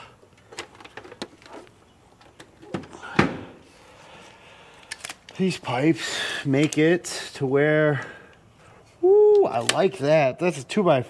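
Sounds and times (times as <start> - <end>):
clicks and knocks of handled housing: 0.3 - 3.4.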